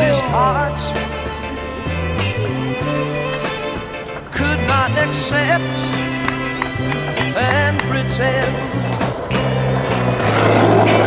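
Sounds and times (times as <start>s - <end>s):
song with held bass notes: 0.0s - 11.0s
skateboard wheels rolling on stone: 0.3s - 11.0s.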